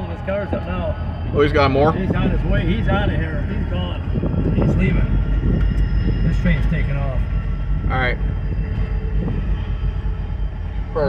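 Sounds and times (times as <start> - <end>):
diesel locomotive rumbling: 0.0 - 11.0.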